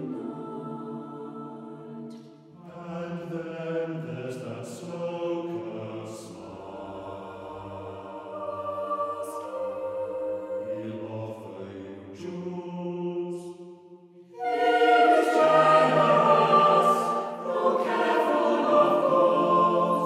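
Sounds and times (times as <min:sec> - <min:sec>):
choir singing unaccompanied: 0:00.0 - 0:13.6, 0:14.3 - 0:20.0.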